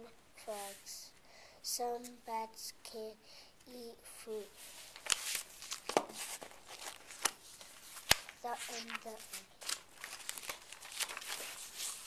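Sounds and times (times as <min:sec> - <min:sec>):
book pages rustling: 0:04.5 - 0:12.0.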